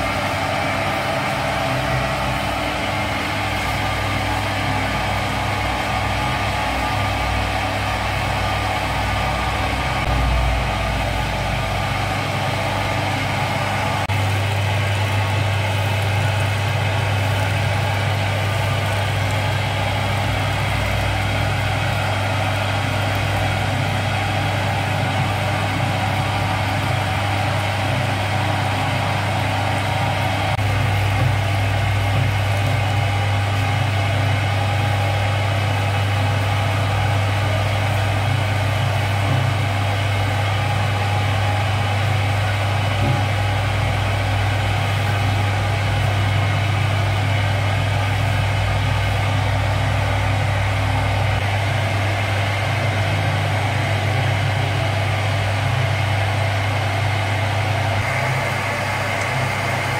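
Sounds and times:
dough mixer motor humming: 0.0 - 59.9.

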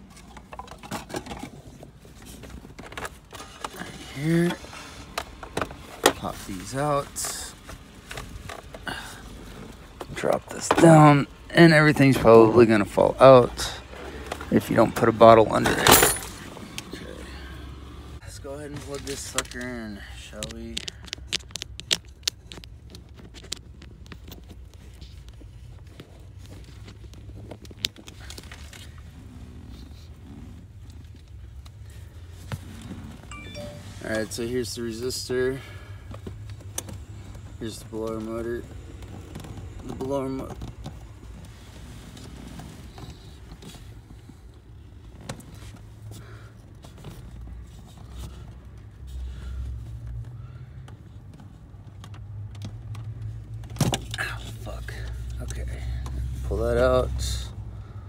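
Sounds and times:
light scraping of plastic parts: 0.0 - 11.2, 18.5 - 33.2
plastic clicks and rustling: 20.4 - 28.9.

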